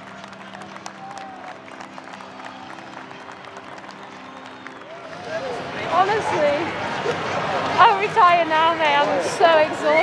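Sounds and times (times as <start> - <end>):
crowd applause: 0.0 - 10.0.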